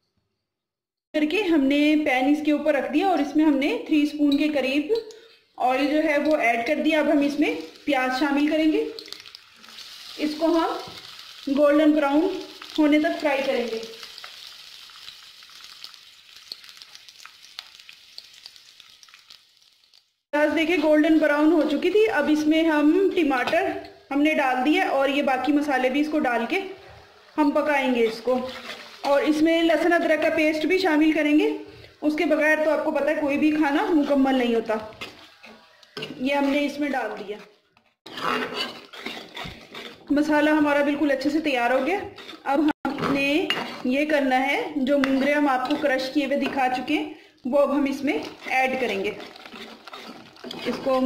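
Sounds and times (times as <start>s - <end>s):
onions sizzling in hot oil: 6.8s - 22.9s, 24.6s - 34.6s, 38.2s - 51.0s
oil popping: 12.3s - 20.2s
metal spoon scraping a pan: 27.2s - 29.1s, 35.0s - 40.6s, 41.2s - 44.1s, 44.9s - 46.8s, 47.8s - 51.0s.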